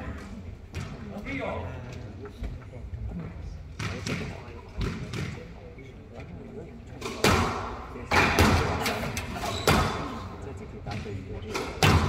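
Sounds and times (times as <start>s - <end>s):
squash ball hits echoing: 7.0s - 10.2s, 10.8s - 12.0s.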